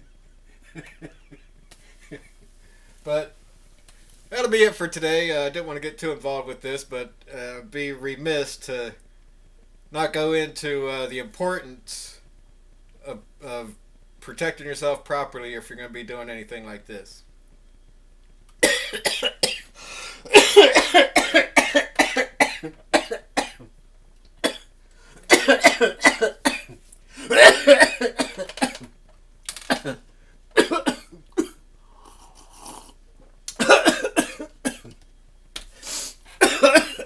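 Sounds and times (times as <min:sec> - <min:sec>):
man laughing: 0:00.6 - 0:02.4
man coughing: 0:18.6 - 0:19.7, 0:20.3 - 0:23.6, 0:25.3 - 0:28.9, 0:29.7 - 0:30.0, 0:30.6 - 0:31.6, 0:33.6 - 0:34.9, 0:36.4 - 0:37.0
man breathing in: 0:19.8 - 0:20.3.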